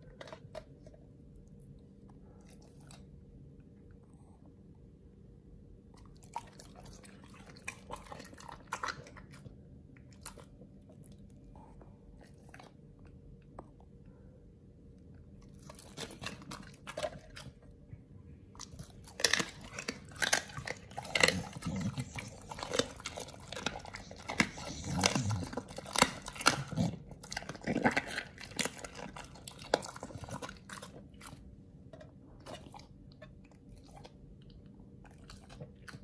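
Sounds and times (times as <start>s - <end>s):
dog crunching raw meat: 0.0s - 3.8s, 5.9s - 11.5s, 15.2s - 36.0s.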